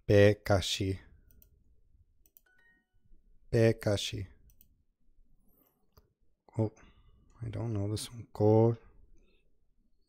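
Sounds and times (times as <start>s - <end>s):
computer mouse click: 1.2s - 1.6s, 2.2s - 2.7s, 4.4s - 4.8s.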